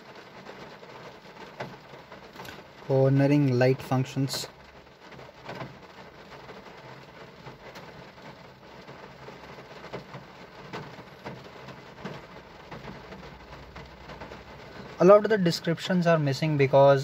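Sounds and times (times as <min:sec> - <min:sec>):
low background hiss: 0:00.0 - 0:05.0, 0:06.6 - 0:17.0.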